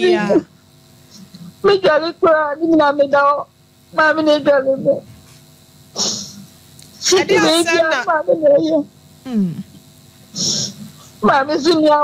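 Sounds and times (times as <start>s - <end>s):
sniff or sharp breath: 6.0s - 6.4s, 10.4s - 11.2s
person speaking: 7.0s - 8.7s.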